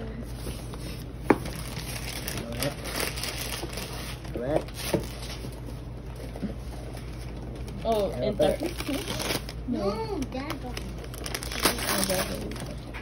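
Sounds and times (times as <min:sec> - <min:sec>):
wrapping paper crinkling: 0:00.3 - 0:12.9.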